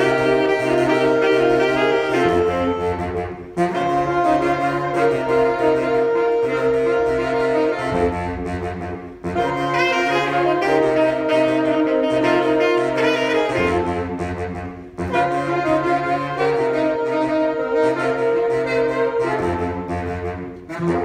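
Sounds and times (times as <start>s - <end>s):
saxophone ensemble playing chords: 0.0s - 21.0s.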